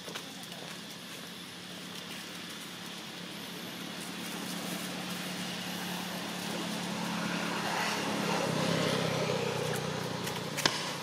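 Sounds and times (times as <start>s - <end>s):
vehicle engine approaching: 0.8s - 11.0s.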